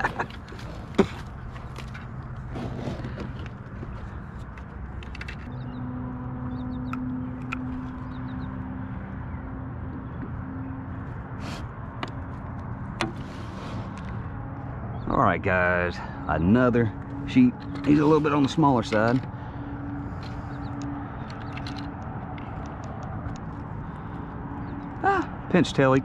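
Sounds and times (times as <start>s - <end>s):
fishing gear clicking and knocking: 0.0s - 5.6s, 17.1s - 23.6s
low motor hum: 0.0s - 25.6s.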